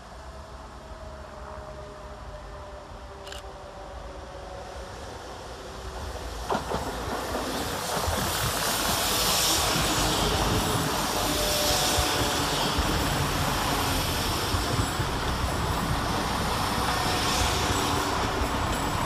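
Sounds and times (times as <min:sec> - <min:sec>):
train engine drone: 0:00.0 - 0:19.0
train wheels on rails: 0:05.3 - 0:19.0.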